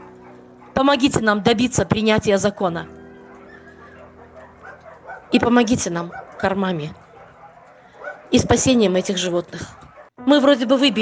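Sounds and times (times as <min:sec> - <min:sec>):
puppies whimpering: 0:02.9 - 0:08.4, 0:09.3 - 0:10.1.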